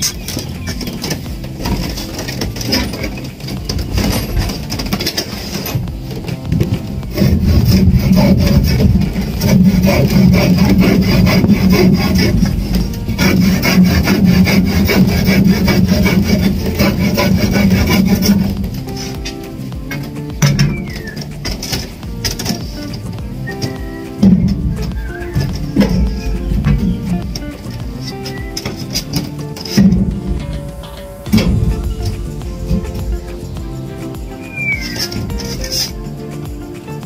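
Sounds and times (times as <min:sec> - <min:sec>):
hand saw cutting wood: 0:00.0 - 0:36.6.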